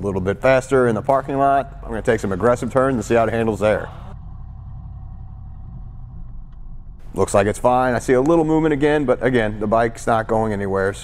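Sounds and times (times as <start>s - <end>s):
car engine and road noise: 0.0s - 9.5s.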